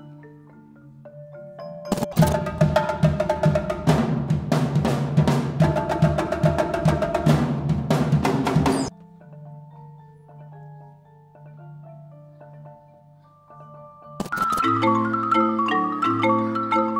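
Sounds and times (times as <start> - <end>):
fast drums and marimba: 0.0 - 16.9
soft mallet notes on marimba: 0.0 - 16.9.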